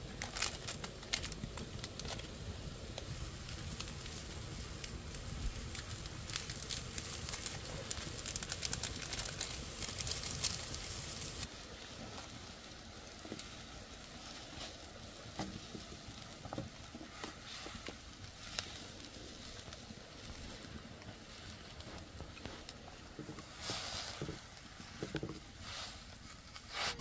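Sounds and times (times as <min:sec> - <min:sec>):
broth bubbling at a hard boil: 0:00.0 - 0:27.0
burning wood crackling: 0:00.0 - 0:27.0.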